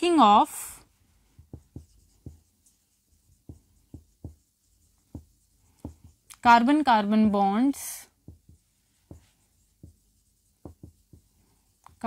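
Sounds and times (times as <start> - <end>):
marker pen strokes on whiteboard: 0.3 - 12.0.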